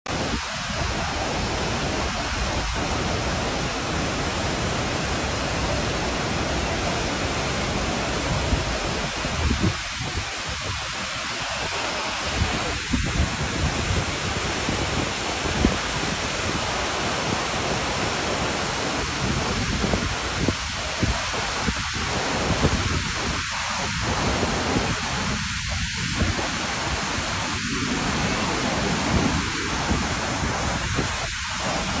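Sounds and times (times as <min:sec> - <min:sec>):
waterfall roaring: 0:00.1 - 0:32.0.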